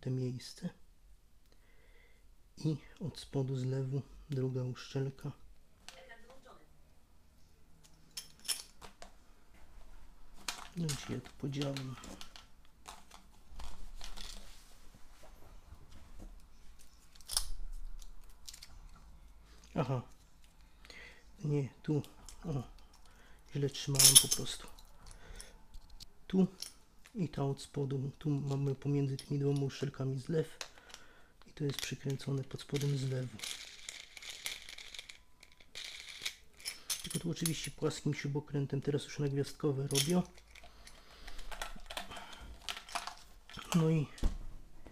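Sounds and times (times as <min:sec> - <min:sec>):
plastic parts rubbing and rustling: 0:10.3 - 0:14.8, 0:40.0 - 0:44.0.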